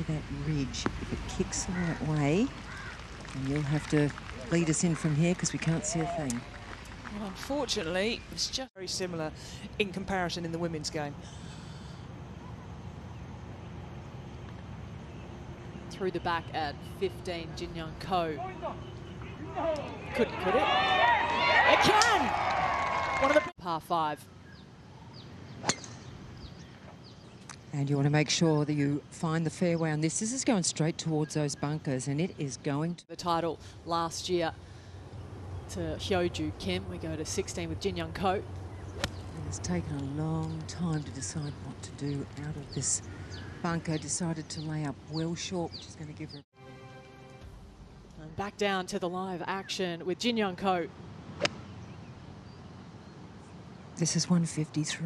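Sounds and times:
outdoor background noise: 0:00.0 - 0:55.0
golf club striking ball: 0:25.6 - 0:26.2, 0:38.8 - 0:39.2, 0:51.4 - 0:51.7.

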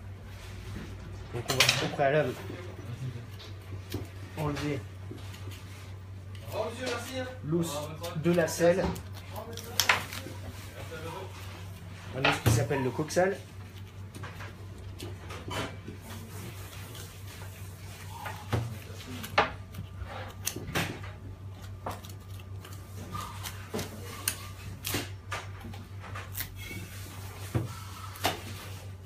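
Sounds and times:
steady low hum: 0:00.0 - 0:29.0
knife cutting and scraping bone: 0:06.4 - 0:25.2, 0:26.1 - 0:29.0.

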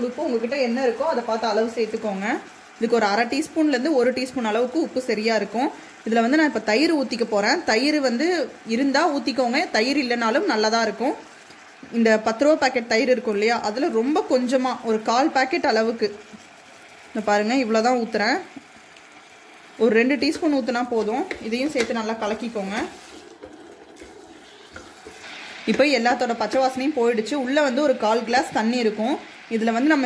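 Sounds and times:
onions sizzling in a pot: 0:00.0 - 0:30.0
person talking: 0:19.8 - 0:23.0
wooden spoon stirring: 0:20.2 - 0:26.8.

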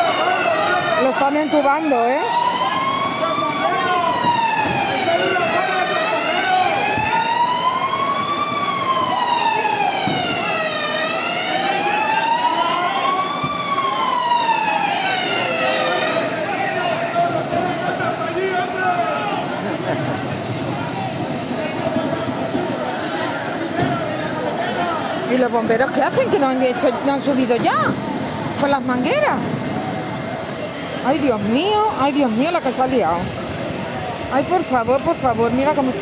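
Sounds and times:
emergency siren wailing: 0:00.0 - 0:36.0
street crowd voices: 0:00.0 - 0:36.0.

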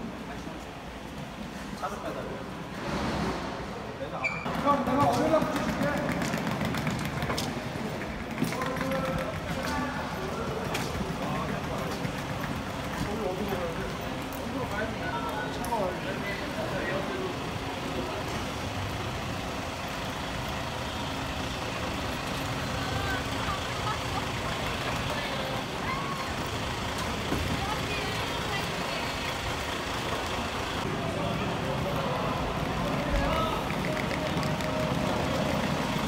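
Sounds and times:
voices of people: 0:00.0 - 0:36.0
bus engine idling: 0:06.9 - 0:36.0.

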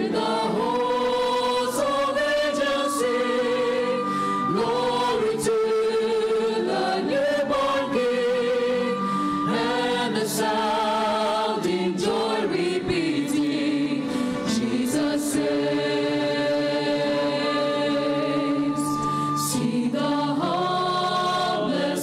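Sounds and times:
choir singing a hymn: 0:00.0 - 0:22.0
strings guitars and piano: 0:00.0 - 0:22.0.

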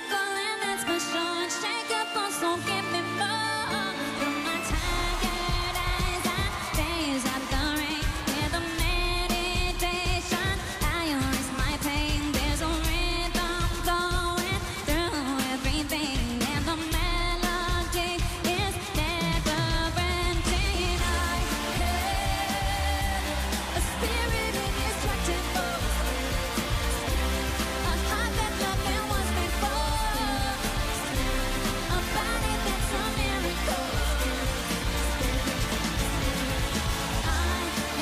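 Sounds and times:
live band playing pop: 0:00.0 - 0:38.0
woman singing into microphone: 0:00.0 - 0:38.0
drum kit steady beat: 0:04.7 - 0:38.0.

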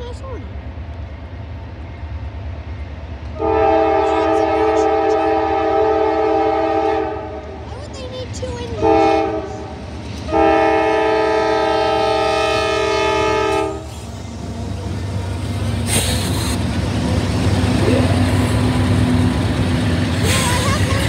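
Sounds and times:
locomotive air horn: 0:03.4 - 0:07.4, 0:08.8 - 0:09.7, 0:10.3 - 0:13.9
diesel engines rumbling past: 0:13.5 - 0:21.0
brief hiss: 0:15.8 - 0:16.6.

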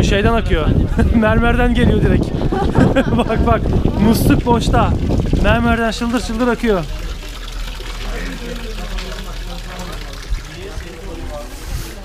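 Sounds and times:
faint voices: 0:00.0 - 0:12.0
water pouring into stone basin: 0:01.8 - 0:12.0.

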